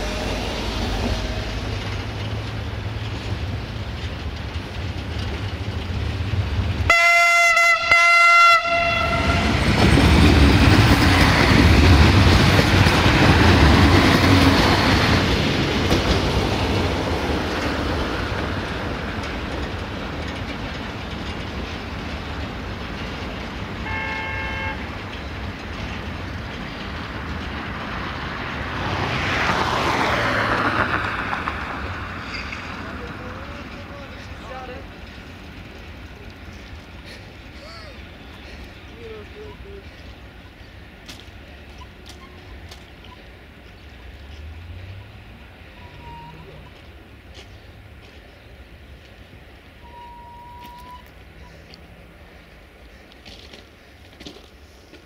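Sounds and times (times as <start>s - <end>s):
diesel train passing: 0.0s - 55.0s
train horn blasts: 6.9s - 9.7s, 23.8s - 24.9s, 49.8s - 50.9s
faint horn-like tone: 45.8s - 46.8s, 49.8s - 51.0s.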